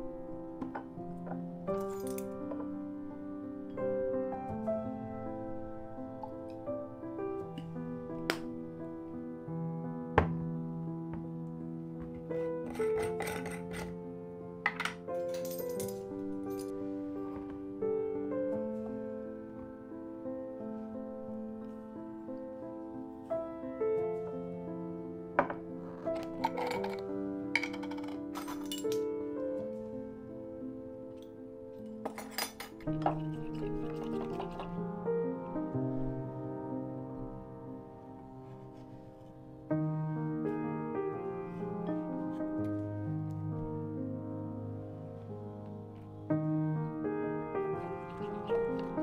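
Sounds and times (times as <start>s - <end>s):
soft piano music: 0.0s - 49.0s
glass clinking: 12.7s - 13.9s, 26.2s - 27.0s, 27.6s - 29.0s, 32.0s - 34.7s
screw lid scraping on glass jar: 12.7s - 13.9s, 32.9s - 34.7s.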